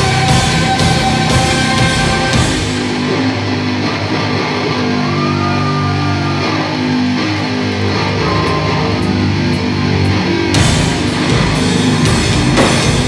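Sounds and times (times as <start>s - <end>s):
bass guitar: 0.0s - 13.0s
distorted electric guitar: 0.0s - 13.0s
drums: 0.0s - 13.0s.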